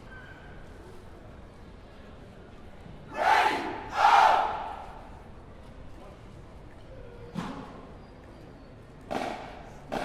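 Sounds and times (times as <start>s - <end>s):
group shouting: 3.2s - 4.6s.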